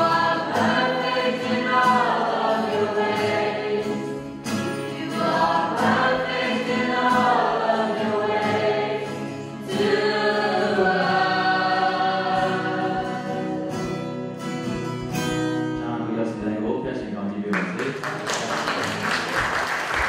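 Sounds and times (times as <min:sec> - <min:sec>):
choir singing gospel song: 0:00.0 - 0:14.0
acoustic guitar: 0:00.0 - 0:20.0.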